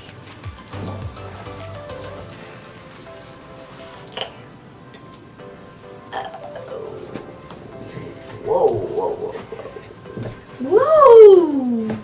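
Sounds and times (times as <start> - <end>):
background music: 0.0 - 12.0
child exclaiming: 10.6 - 12.0.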